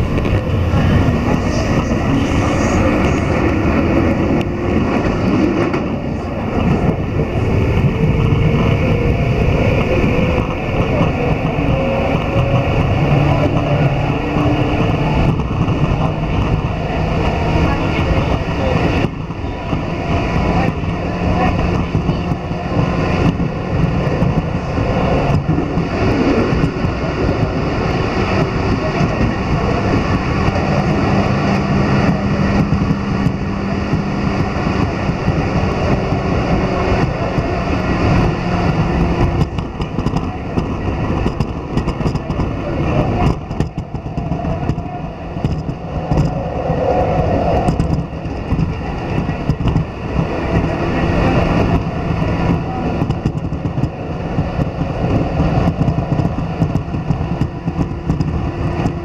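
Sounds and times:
train passing alongside: 0:00.0 - 0:59.0
train wheels rumbling on rails: 0:00.0 - 0:59.0.

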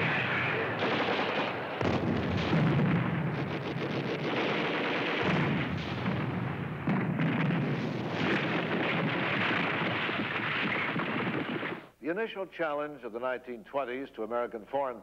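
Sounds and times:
artillery shells exploding: 0:00.0 - 0:11.9
machine-gun fire: 0:00.0 - 0:11.9.

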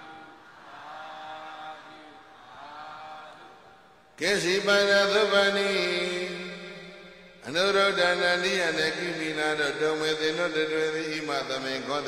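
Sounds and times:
faint chanting voices: 0:00.0 - 0:12.0.

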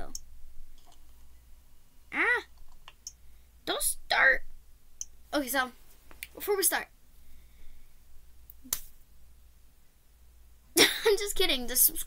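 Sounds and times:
low room hum: 0:00.0 - 0:12.0
girl talking: 0:02.1 - 0:02.5, 0:03.6 - 0:04.5, 0:05.3 - 0:06.9, 0:10.8 - 0:12.0.

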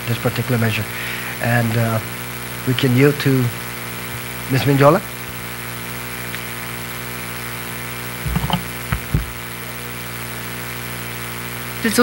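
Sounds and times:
sound system electrical hum: 0:00.0 - 0:12.0
soft low knocks: 0:08.3 - 0:09.4.

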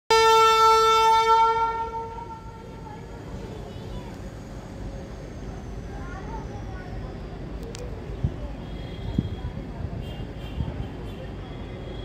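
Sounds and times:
locomotive horn blast: 0:00.1 - 0:02.6
faint voices: 0:02.3 - 0:12.0.

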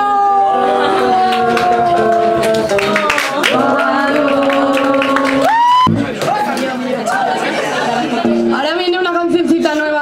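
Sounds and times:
voices and chatter: 0:00.0 - 0:10.0.

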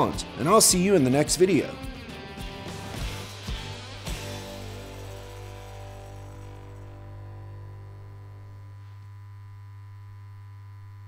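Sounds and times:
neon sign electrical hum: 0:03.1 - 0:11.0.

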